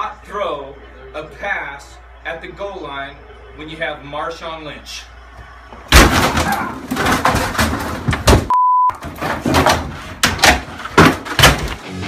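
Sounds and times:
thumps and bangs: 5.9s - 11.9s
censor beep: 8.5s - 9.0s.

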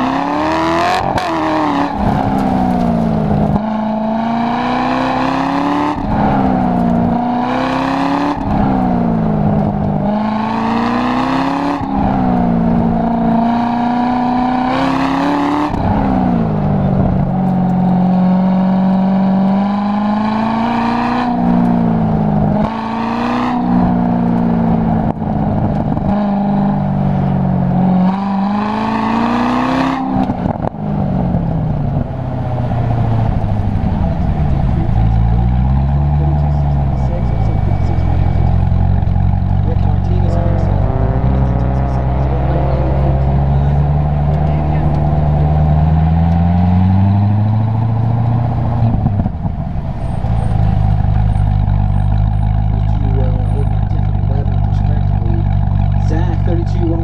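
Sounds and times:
car engine accelerating hard: 0.0s - 57.0s.

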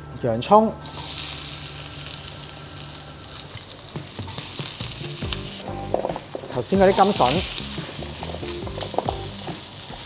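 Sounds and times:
onion sizzling in hot oil: 0.8s - 10.0s.

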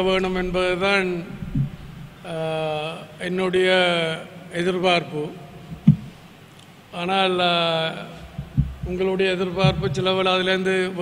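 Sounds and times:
man speaking into microphones: 0.0s - 1.5s, 2.2s - 5.5s, 6.9s - 11.0s.

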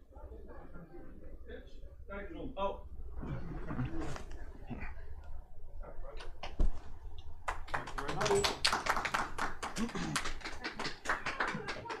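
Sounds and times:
audience applause: 7.5s - 12.0s.

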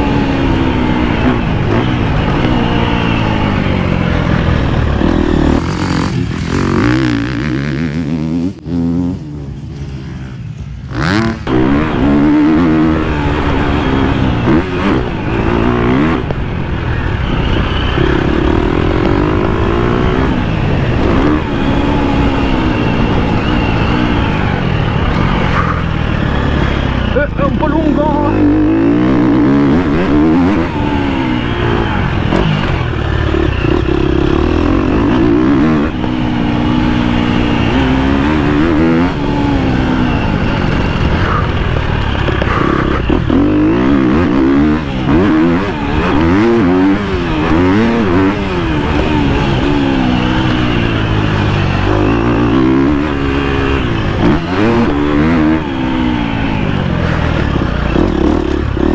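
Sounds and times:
motocross bike engine revving: 0.0s - 58.9s.

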